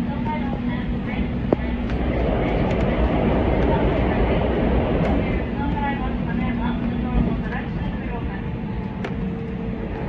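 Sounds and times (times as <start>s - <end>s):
train wheels rumbling on rails: 0.0s - 10.0s.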